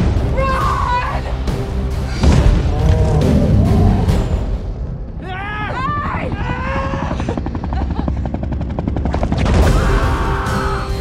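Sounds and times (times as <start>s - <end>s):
helicopter rotors chopping: 2.5s - 11.0s.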